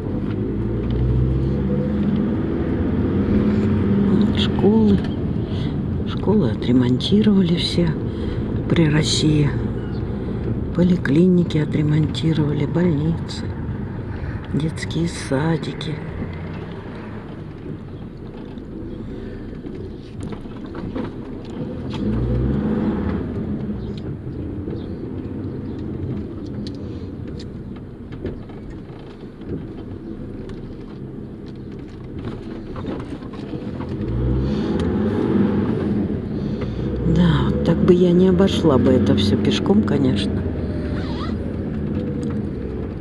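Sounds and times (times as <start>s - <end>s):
bus engine running: 0.0s - 43.0s.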